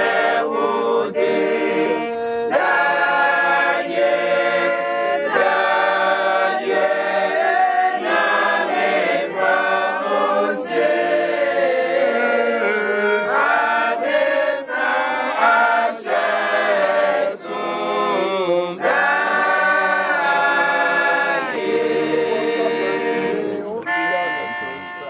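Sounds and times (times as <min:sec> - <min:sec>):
women's choir singing a hymn: 0:00.0 - 0:23.8.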